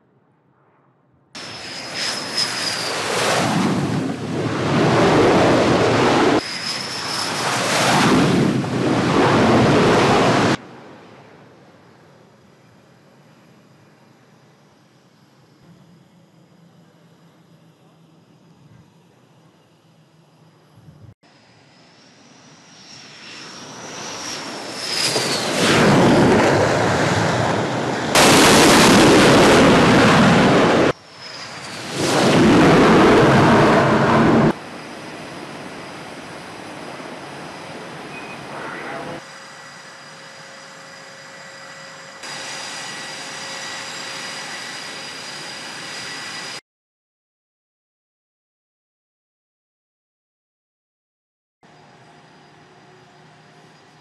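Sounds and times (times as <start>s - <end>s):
loud jet blast: 0.4s - 11.0s, 23.0s - 39.3s, 42.1s - 46.6s
jet engines whining: 1.4s - 46.6s.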